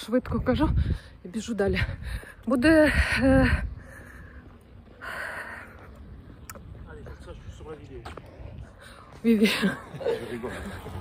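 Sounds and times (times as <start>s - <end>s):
woman's voice: 0.0s - 3.8s, 9.2s - 9.8s
woman breathing while running: 0.7s - 6.4s, 8.2s - 9.8s.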